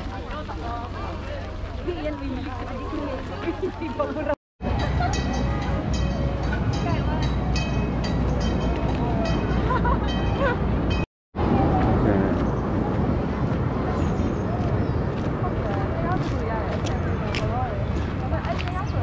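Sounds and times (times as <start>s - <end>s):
busy outdoor walkway noise: 0.0s - 19.0s
indistinct voices talking: 0.0s - 19.0s.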